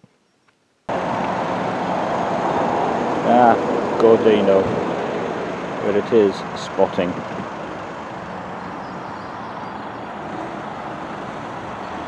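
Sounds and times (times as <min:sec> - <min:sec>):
steady road traffic: 0:00.9 - 0:12.0.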